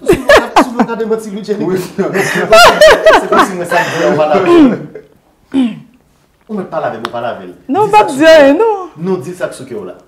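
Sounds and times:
person laughing: 0:02.2 - 0:04.7.

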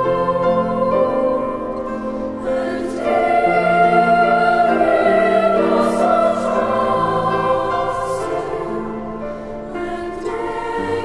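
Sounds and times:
youth choir singing: 0:00.0 - 0:11.0.

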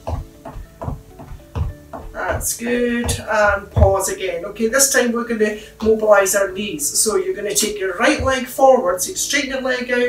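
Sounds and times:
soft low thud: 0:00.0 - 0:04.2
background music with held notes: 0:00.0 - 0:10.0.

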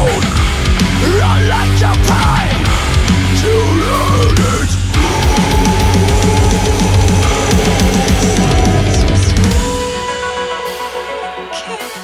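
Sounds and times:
heavy low-tuned guitars: 0:00.0 - 0:11.2
bass guitar: 0:00.0 - 0:11.3
drums and cymbals: 0:00.0 - 0:12.0.

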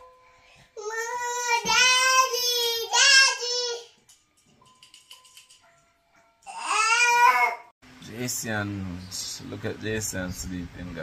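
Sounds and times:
child calling in sing-song voice: 0:00.8 - 0:03.9
plinking crib mobile tune: 0:04.0 - 0:06.5.

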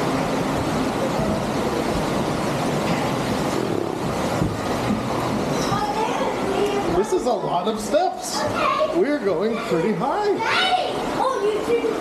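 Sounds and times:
echoing pool noise: 0:00.0 - 0:12.0
water running through slides: 0:00.0 - 0:12.0.

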